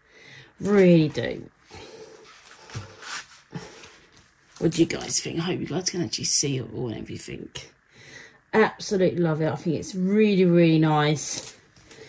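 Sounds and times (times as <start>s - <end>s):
plastic film rustling: 2.2s - 5.2s.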